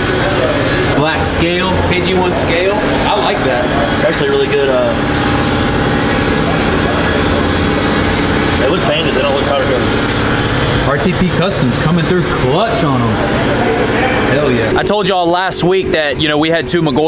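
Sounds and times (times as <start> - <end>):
indistinct voices talking: 0.0 - 17.0
vehicle engine running: 0.0 - 17.0.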